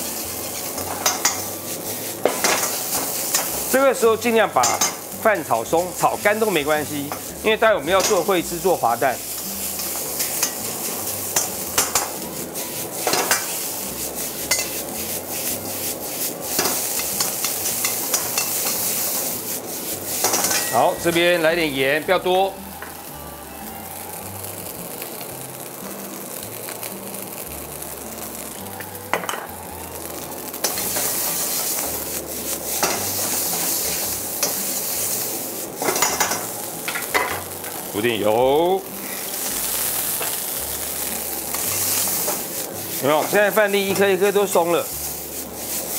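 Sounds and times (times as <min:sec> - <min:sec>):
ladle scraping and clinking wok: 0:00.0 - 0:21.6, 0:30.6 - 0:38.0, 0:40.1 - 0:45.9
rice sizzling in oil: 0:00.0 - 0:45.9
metal ladle stirring: 0:12.8 - 0:21.2.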